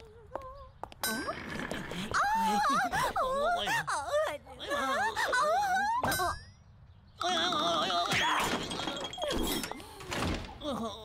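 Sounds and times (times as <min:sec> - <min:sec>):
wordless cartoon voices: 0:00.0 - 0:06.5, 0:07.1 - 0:11.0.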